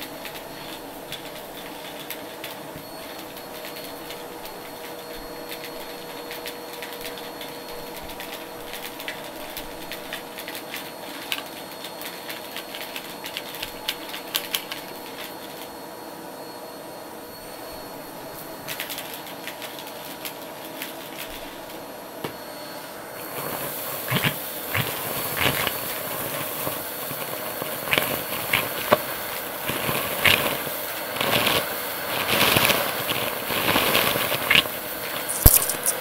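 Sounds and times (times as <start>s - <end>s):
vacuum cleaner running: 0.0s - 36.0s
debris crackling up a hose: 23.2s - 36.0s.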